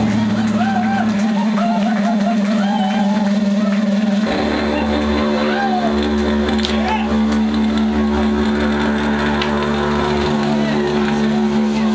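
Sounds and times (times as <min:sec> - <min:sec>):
electric guitar droning chord: 0:00.0 - 0:11.9
low hum: 0:00.0 - 0:11.9.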